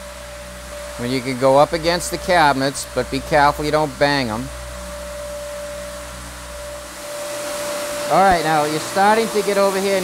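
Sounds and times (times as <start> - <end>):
floor sander whining: 0.0 - 10.0.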